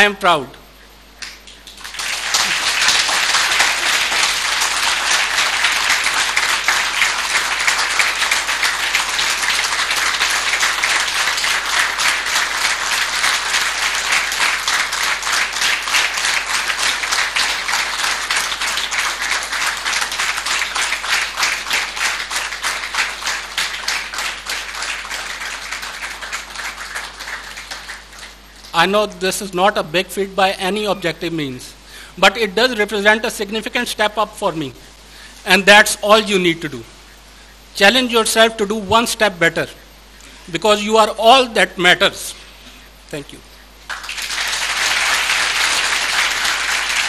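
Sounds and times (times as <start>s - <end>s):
audience applauding: 1.2s - 28.7s, 43.8s - 47.0s.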